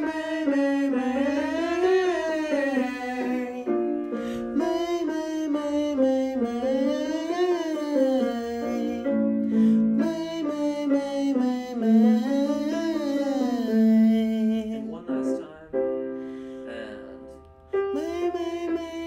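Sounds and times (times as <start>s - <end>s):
person singing vocal scales: 0.0s - 15.8s, 16.5s - 19.0s
piano accompaniment: 0.0s - 19.0s.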